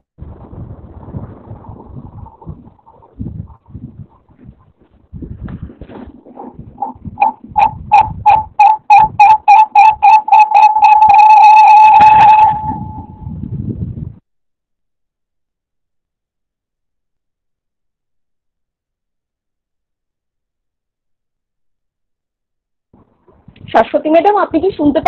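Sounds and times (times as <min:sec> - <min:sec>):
open microphone background noise: 0:00.0 - 0:14.2, 0:22.9 - 0:25.0
high-pitched beeps: 0:06.8 - 0:13.1.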